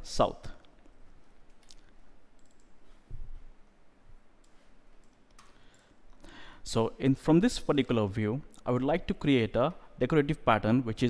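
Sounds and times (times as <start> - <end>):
computer mouse clicks: 1.5 - 2.7, 4.4 - 5.9.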